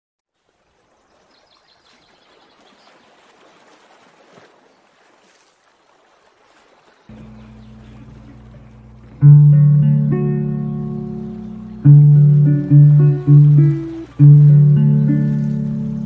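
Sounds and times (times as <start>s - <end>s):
running water: 0.3s - 16.0s
steady low hum: 7.1s - 16.0s.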